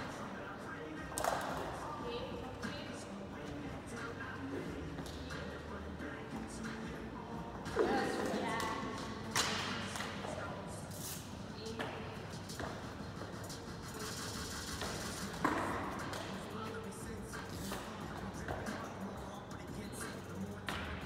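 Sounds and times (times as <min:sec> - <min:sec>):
background music: 0:00.0 - 0:21.0.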